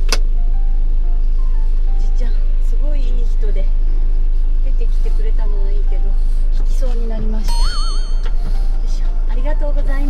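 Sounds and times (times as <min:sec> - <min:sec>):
engine idling drone: 0:00.0 - 0:10.0
soft background music: 0:00.0 - 0:10.0.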